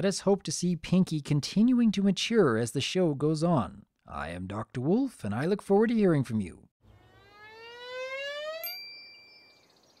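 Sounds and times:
bright bell-like ringing: 0:08.6 - 0:10.0.

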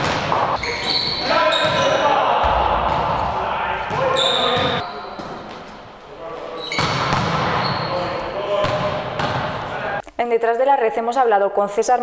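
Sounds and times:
volleyballs struck and bouncing: 0:00.0 - 0:05.8, 0:06.7 - 0:10.0
players' voices: 0:00.0 - 0:10.0
shoe squeaks on court: 0:00.5 - 0:02.0, 0:03.9 - 0:05.8, 0:06.5 - 0:09.4.

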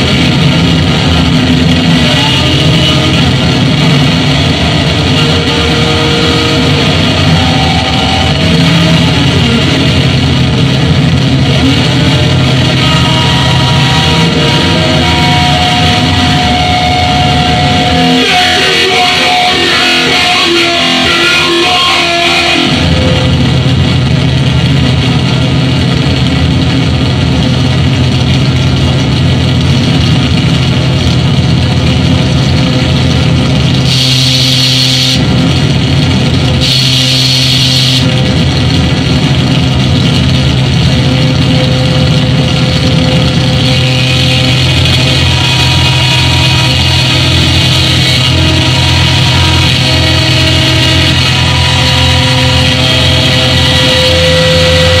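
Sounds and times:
distorted noise: 0:00.0 - 0:55.0
low drone: 0:00.0 - 0:55.0
bright hissing bursts: 0:33.9 - 0:35.2, 0:36.6 - 0:38.1.

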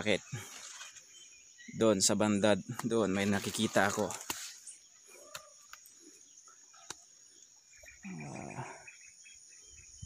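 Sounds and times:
insects droning: 0:00.0 - 0:10.0.

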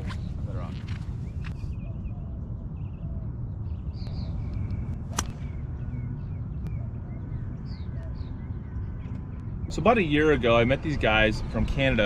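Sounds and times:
steady low rumble: 0:00.0 - 0:12.0
golf club striking ball: 0:05.1 - 0:05.6.

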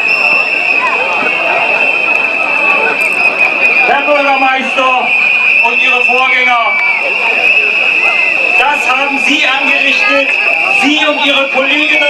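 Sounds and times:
crowd chatter: 0:00.0 - 0:12.0
shrill whistles blowing: 0:00.0 - 0:12.0.

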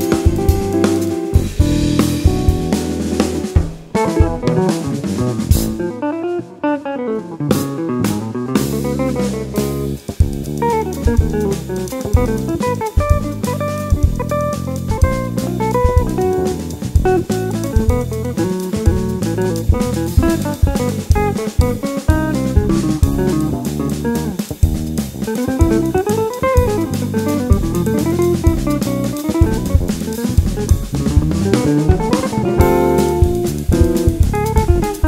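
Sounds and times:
bass guitar: 0:00.0 - 0:35.0
drum kit: 0:00.0 - 0:35.0
electric guitar: 0:00.0 - 0:35.0
piano: 0:00.0 - 0:35.0.

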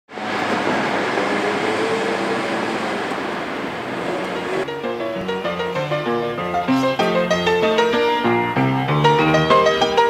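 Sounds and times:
dense traffic noise: 0:00.1 - 0:07.7.

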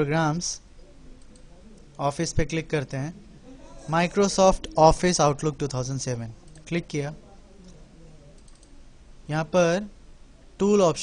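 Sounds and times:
person speaking: 0:00.0 - 0:11.0
computer mouse clicks: 0:06.5 - 0:06.7, 0:08.4 - 0:08.8.

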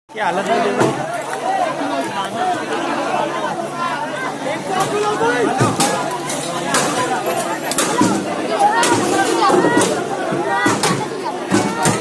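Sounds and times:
crowd talking: 0:00.1 - 0:12.0
sharp knocks: 0:08.8 - 0:12.0.

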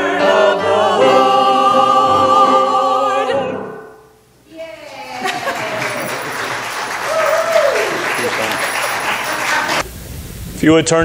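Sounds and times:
voices: 0:04.5 - 0:09.8
congregation applauding: 0:04.8 - 0:09.8.

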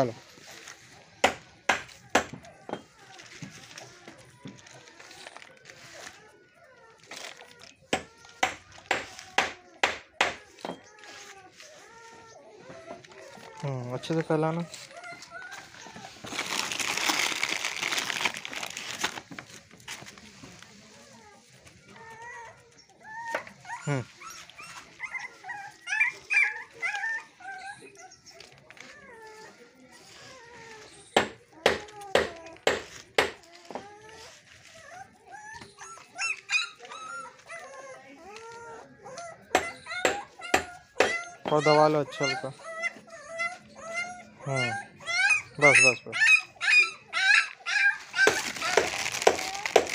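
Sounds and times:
straw rustling in a crate: 0:02.8 - 0:09.8, 0:10.5 - 0:22.7, 0:28.2 - 0:35.2, 0:47.5 - 0:49.9
dog whimpering: 0:09.4 - 0:16.2, 0:20.9 - 0:32.6, 0:33.5 - 0:48.9.

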